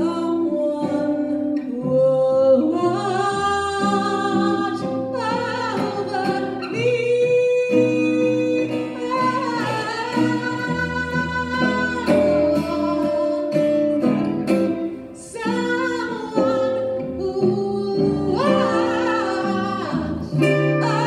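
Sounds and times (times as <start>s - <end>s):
strummed acoustic guitar: 0.0s - 21.0s
woman singing: 0.0s - 21.0s.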